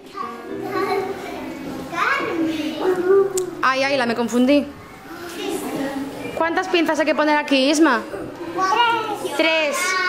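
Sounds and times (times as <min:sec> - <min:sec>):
young children chattering: 0:00.0 - 0:03.6, 0:04.7 - 0:06.8, 0:07.8 - 0:10.0
teacher speaking: 0:00.1 - 0:10.0.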